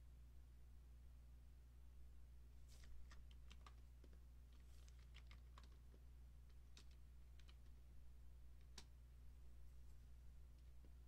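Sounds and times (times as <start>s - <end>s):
low electrical hum: 0.0s - 11.0s
computer keys clicking: 6.7s - 7.7s.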